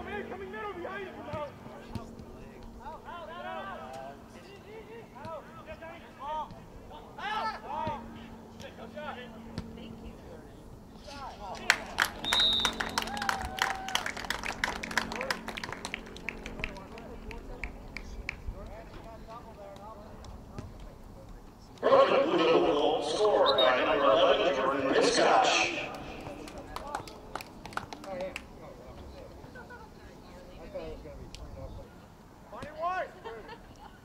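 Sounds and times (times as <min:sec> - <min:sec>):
crowd clapping and cheering: 0:11.5 - 0:18.4, 0:25.5 - 0:28.5
high whistle blast: 0:12.2 - 0:13.0.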